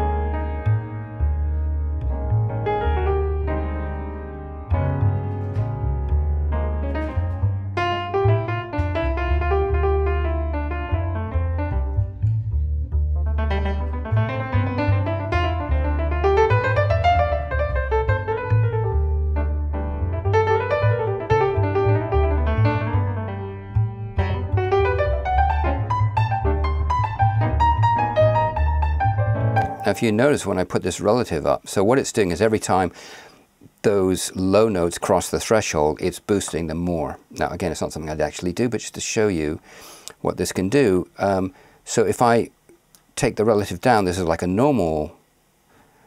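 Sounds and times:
solo piano playing: 0:00.0 - 0:30.4.

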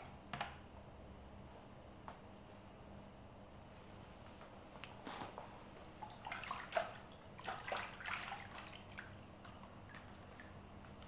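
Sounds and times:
water splashing in a tub: 0:05.8 - 0:11.0.

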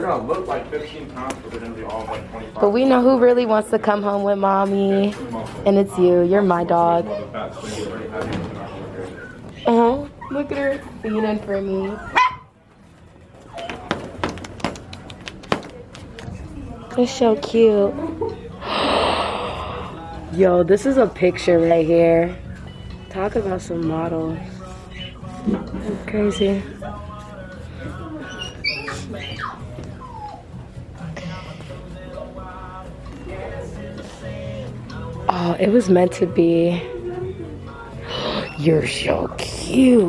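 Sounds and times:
puppy barking: 0:12.0 - 0:12.5
puppies whimpering: 0:28.0 - 0:30.9.

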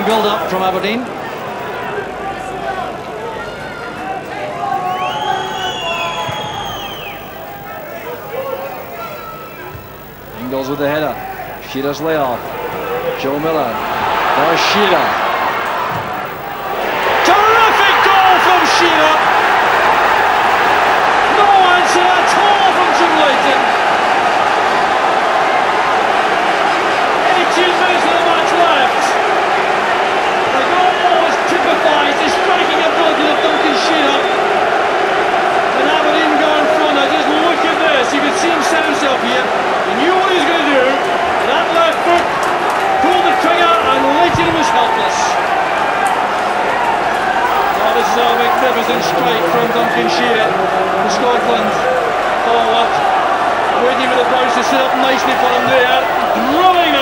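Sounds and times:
stadium crowd noise: 0:00.0 - 0:57.0
long whistles: 0:04.8 - 0:09.6, 0:13.8 - 0:21.1, 0:47.5 - 0:50.0.

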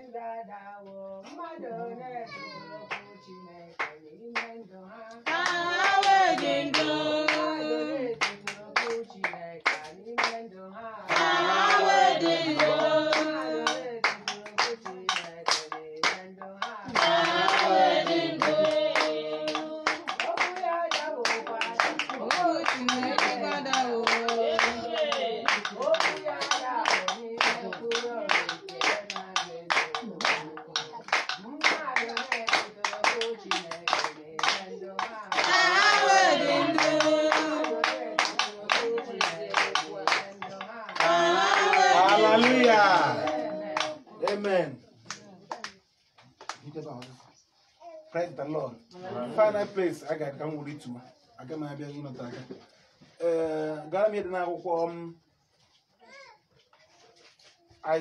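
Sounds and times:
voices singing a praise song: 0:00.0 - 0:55.1
hand claps on the beat: 0:02.9 - 0:03.2, 0:03.8 - 0:04.6, 0:05.2 - 0:10.4, 0:11.1 - 0:47.2.

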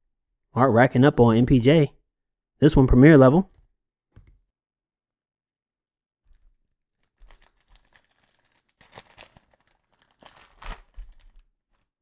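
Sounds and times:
foil pack tearing: 0:07.0 - 0:11.9
foil wrapper crinkling: 0:07.0 - 0:11.9.

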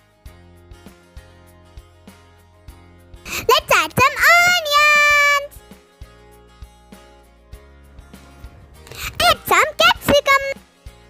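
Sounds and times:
quiet background music with bass: 0:00.0 - 0:04.1, 0:05.4 - 0:11.0
child speaking: 0:03.3 - 0:05.5, 0:08.9 - 0:10.6.

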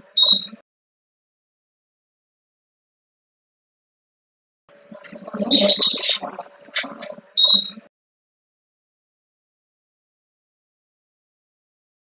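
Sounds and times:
garbled voice fragment: 0:05.0 - 0:07.2.

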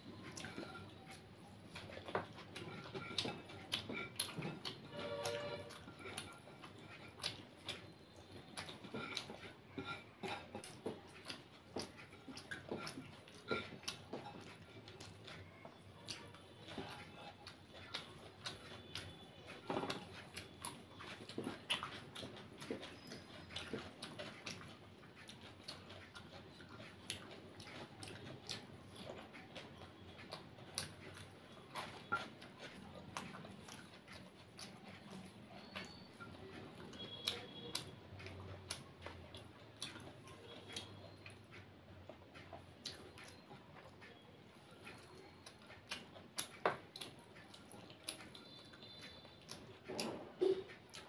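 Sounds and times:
chewing crunches: 0:00.0 - 0:51.0.

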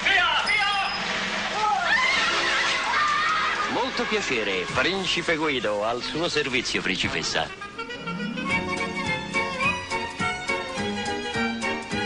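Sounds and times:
horse whinnying: 0:07.6 - 0:10.5.

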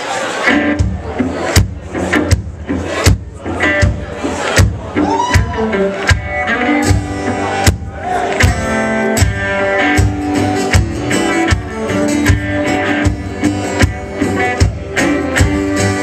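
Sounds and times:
drum struck steadily: 0:00.8 - 0:05.5, 0:06.1 - 0:15.7
strummed acoustic guitar: 0:05.6 - 0:16.0.

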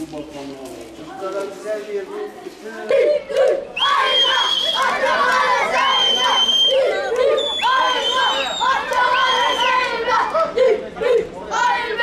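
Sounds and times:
crowd chatter: 0:00.0 - 0:12.0
children chanting in unison: 0:02.9 - 0:12.0.

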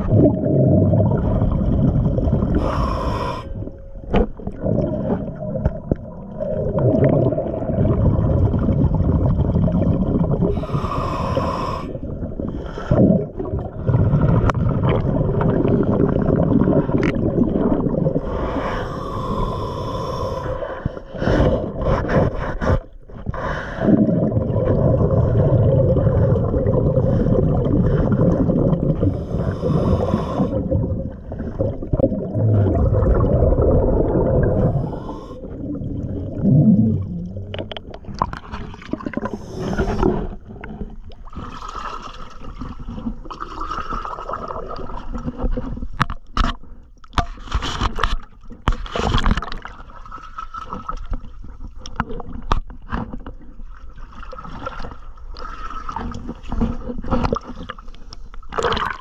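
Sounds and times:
bubbling underwater exhalations: 0:00.0 - 0:20.6, 0:23.4 - 0:45.4, 0:58.5 - 0:59.0
hissing regulator inhalations: 0:02.6 - 0:03.6, 0:10.5 - 0:12.0, 0:18.4 - 0:21.5, 0:29.1 - 0:30.7, 0:34.6 - 0:35.6.

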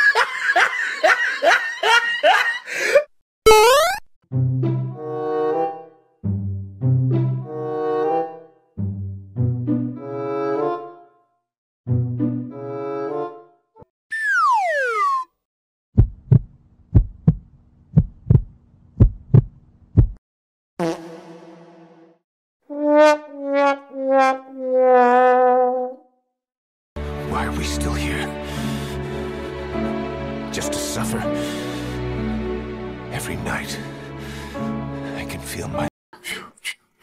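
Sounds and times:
person laughing in rapid bursts: 0:00.0 - 0:03.0
heartbeat thumps: 0:16.0 - 0:20.2.

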